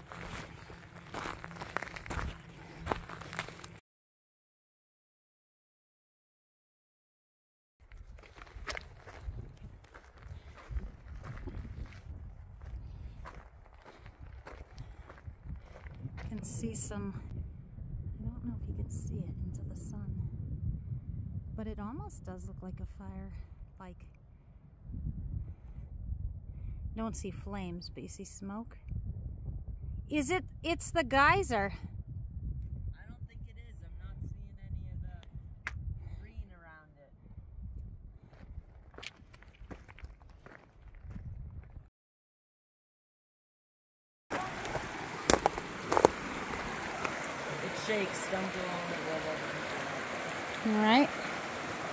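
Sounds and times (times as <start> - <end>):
footsteps crunching on stony trail: 0.0 - 3.8, 7.8 - 16.5, 38.3 - 41.8, 44.3 - 47.9
wind rumble on microphone: 0.0 - 3.8, 7.8 - 41.9.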